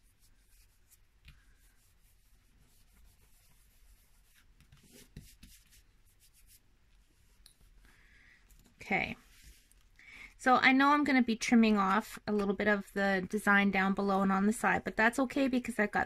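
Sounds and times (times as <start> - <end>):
hands rubbing paper: 0.0 - 7.8.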